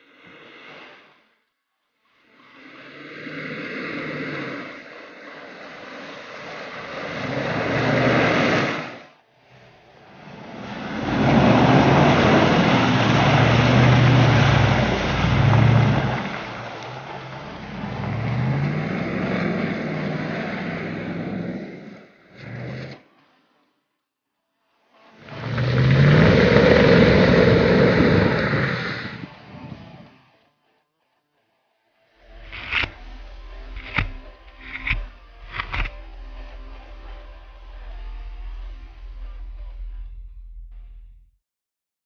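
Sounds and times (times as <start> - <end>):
car engine revving: 6.4 - 8.9, 9.6 - 23.1, 25.2 - 30.0, 32.2 - 41.3
tyres churning through mud: 6.9 - 8.6, 10.0 - 21.7, 25.3 - 29.3.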